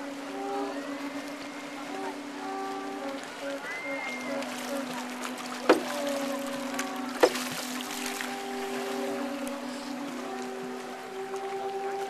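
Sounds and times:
low drone: 0.0s - 12.0s
person chanting long notes: 0.0s - 12.0s
paddle stroke knock: 5.6s - 6.2s, 7.2s - 7.6s.

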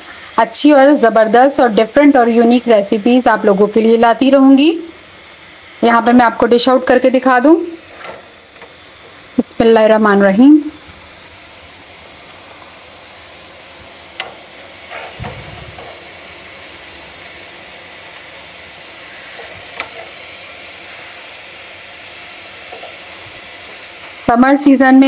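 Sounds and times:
beans sizzling in a pot: 0.0s - 25.0s.

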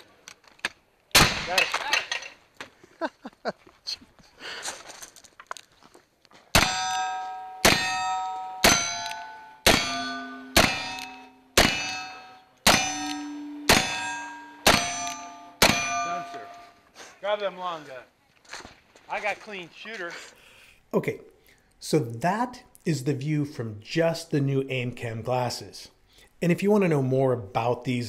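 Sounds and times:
steel target ringing: 6.6s - 16.8s
quiet shuffling: 16.5s - 20.4s.

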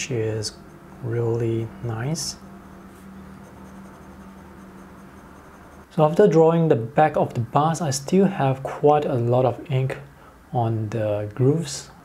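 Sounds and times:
low hum: 0.0s - 6.0s
pen nib scratching on paper: 2.6s - 5.9s.

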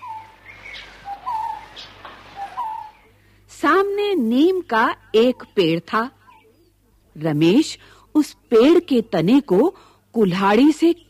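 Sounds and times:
bird calling: 0.0s - 3.2s
faint outdoor background: 0.0s - 11.0s.

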